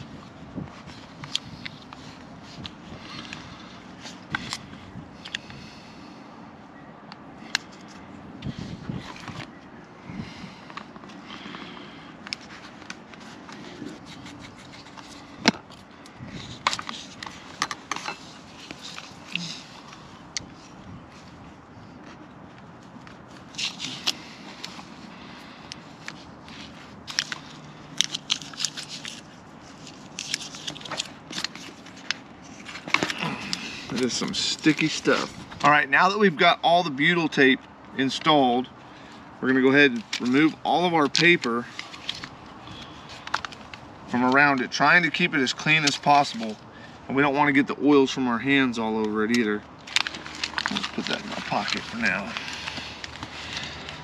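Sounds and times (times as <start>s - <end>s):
tape crackling and scraping: 0.0s - 5.6s, 7.4s - 46.9s, 49.0s - 54.0s.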